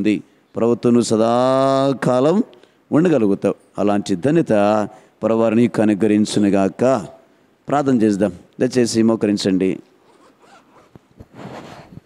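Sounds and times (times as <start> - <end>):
zipper being pulled: 10.0 - 12.0.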